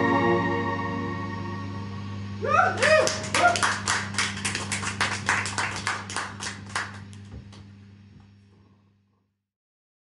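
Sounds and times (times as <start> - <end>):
steady low hum: 0.0 - 9.4
audience applauding: 2.7 - 7.2.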